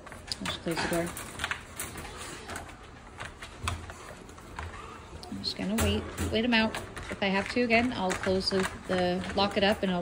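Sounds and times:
wire frame clicking and rattling: 0:00.0 - 0:04.8, 0:05.6 - 0:10.0.

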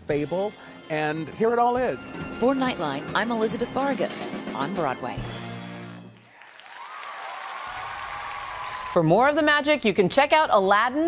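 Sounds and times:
audience applauding: 0:06.1 - 0:09.1.

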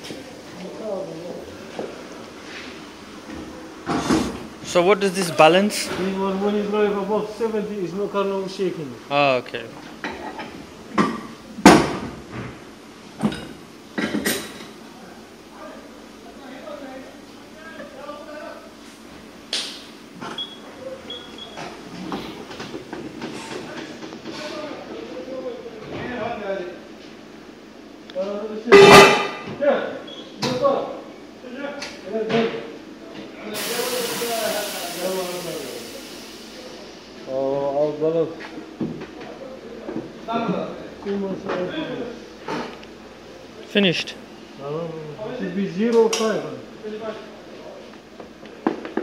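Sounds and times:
air hissing: 0:33.6 - 0:37.0.

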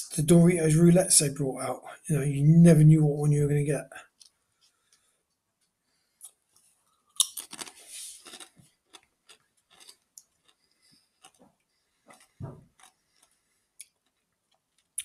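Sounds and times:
man crunching tortilla chips: 0:06.2 - 0:15.0.

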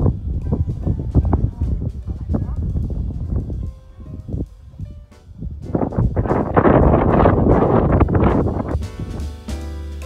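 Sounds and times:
wind buffeting microphone: 0:00.0 - 0:09.4.

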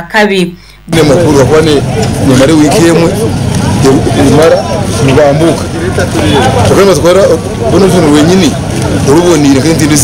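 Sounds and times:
low background noise: 0:00.0 - 0:10.0
man speaking: 0:00.8 - 0:10.0.

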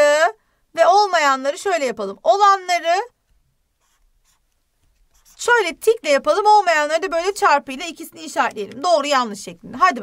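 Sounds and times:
marker scratching on paper: 0:03.8 - 0:09.2.

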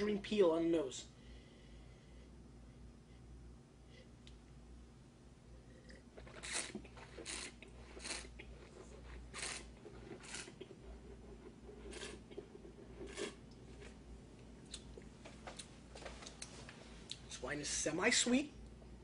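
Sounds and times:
wine slurping: 0:05.8 - 0:14.0.

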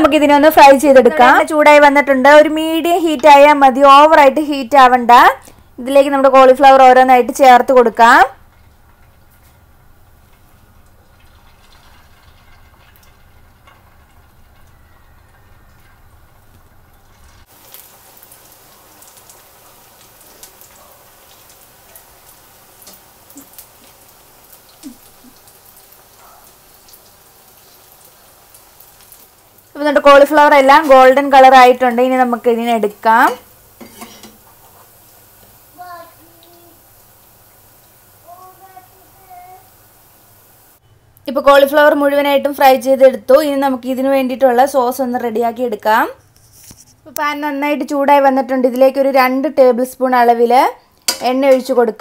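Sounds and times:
batter frying in hot oil: 0:00.0 - 0:48.2
low steady background noise: 0:00.0 - 0:52.0.

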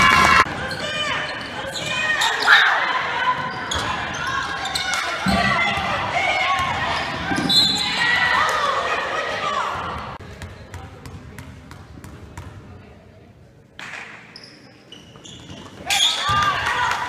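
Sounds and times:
echoing voices in gym: 0:00.0 - 0:17.0
referee's whistle: 0:07.4 - 0:08.0.

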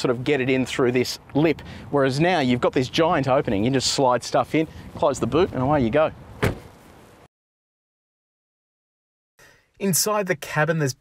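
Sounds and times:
car tailgate shutting thud: 0:06.4 - 0:06.7.

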